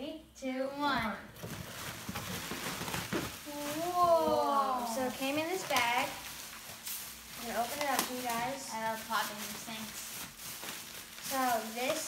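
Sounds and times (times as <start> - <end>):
plastic packaging crinkling: 1.4 - 12.0
child's voice: 3.5 - 6.0.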